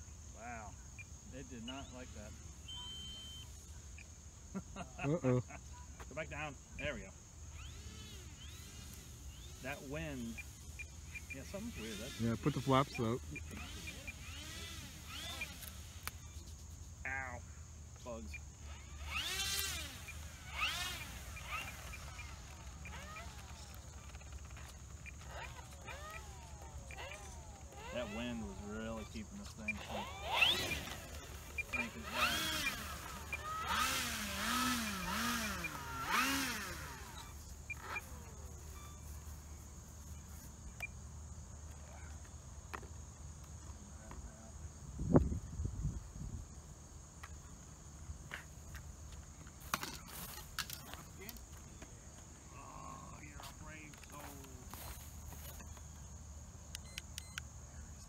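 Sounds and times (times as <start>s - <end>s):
high insect drone: 0.0s - 58.0s
model plane electric motor revving: 1.4s - 3.7s, 6.2s - 17.0s, 18.0s - 40.8s, 49.4s - 51.9s, 53.0s - 56.0s.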